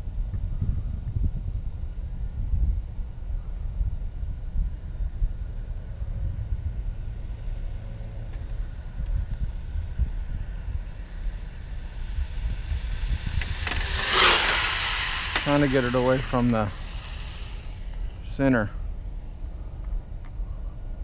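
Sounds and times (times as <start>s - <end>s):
wind rumble on microphone: 0.0s - 21.0s
rc car passing at speed: 5.4s - 19.0s.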